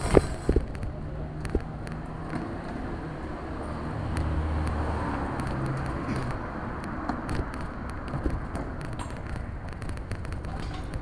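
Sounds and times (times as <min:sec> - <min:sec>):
city noise: 0:00.0 - 0:11.0.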